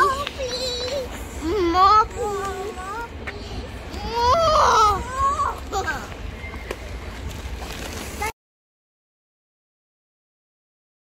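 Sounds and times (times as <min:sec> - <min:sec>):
young child wailing: 0:04.0 - 0:05.6.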